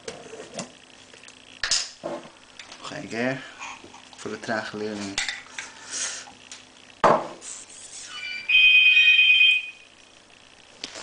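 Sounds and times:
phone ringing: 0:08.1 - 0:09.9.

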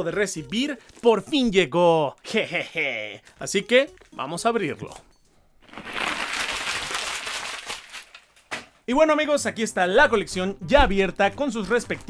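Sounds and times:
wrapping tearing and rustling: 0:00.8 - 0:01.2, 0:05.6 - 0:08.8.

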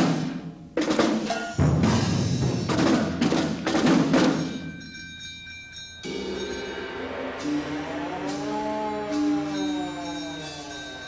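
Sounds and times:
struck percussion: 0:00.0 - 0:11.0
metallic bell-like tones: 0:04.1 - 0:11.0
low sustained cluster of tones: 0:05.9 - 0:11.0.

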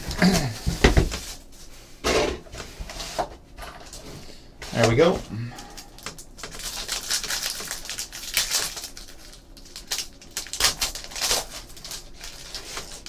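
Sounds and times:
foil wrapper crinkling and tearing: 0:05.6 - 0:13.0.

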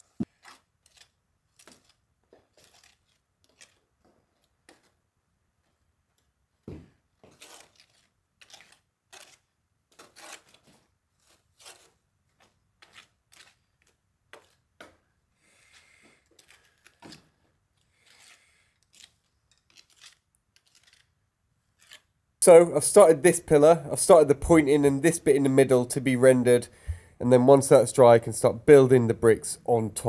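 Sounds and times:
trowel scraping mortar: 0:00.2 - 0:05.0, 0:07.3 - 0:14.7, 0:15.6 - 0:22.2.

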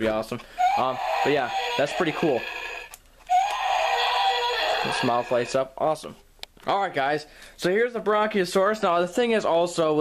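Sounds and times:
toy dinosaur roar from speaker: 0:00.6 - 0:05.5.

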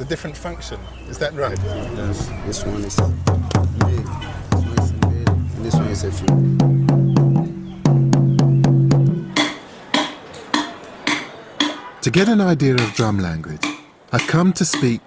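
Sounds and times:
talking drums struck: 0:02.9 - 0:15.0.

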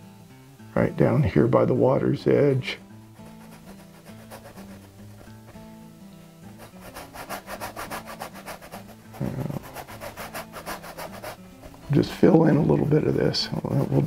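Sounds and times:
soft background music: 0:00.0 - 0:14.0
paintbrush scrubbing on canvas: 0:03.2 - 0:05.7, 0:06.5 - 0:14.0.

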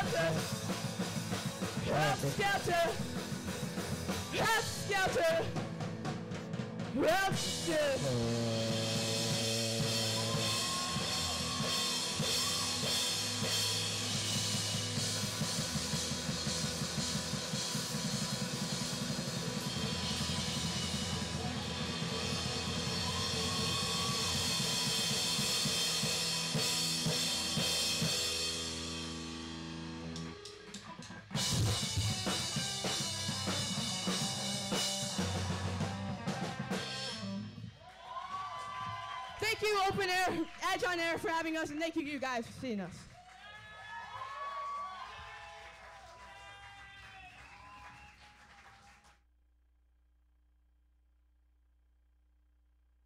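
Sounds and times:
rock band playing: 0:00.0 - 0:37.8.

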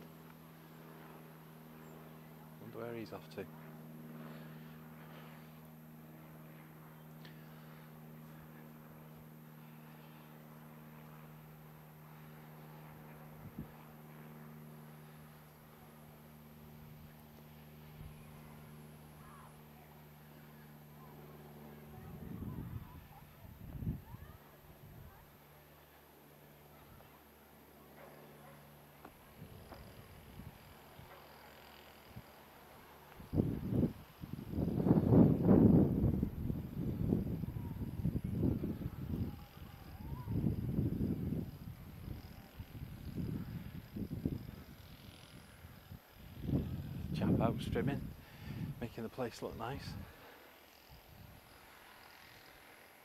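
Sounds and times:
faint low hum: 0:00.0 - 0:53.0
wind buffeting microphone: 0:33.2 - 0:45.0, 0:45.6 - 0:48.9.

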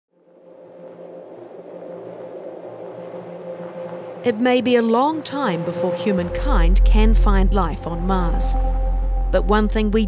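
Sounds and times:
ambient drone: 0:00.1 - 0:10.0
low hum: 0:00.1 - 0:10.0.

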